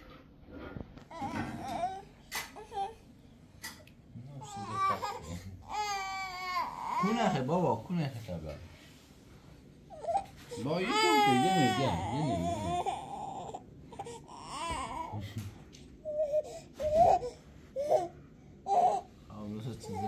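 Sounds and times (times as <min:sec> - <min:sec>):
baby crying: 0:01.1 - 0:03.0, 0:04.4 - 0:07.5, 0:09.9 - 0:15.2, 0:16.0 - 0:19.1.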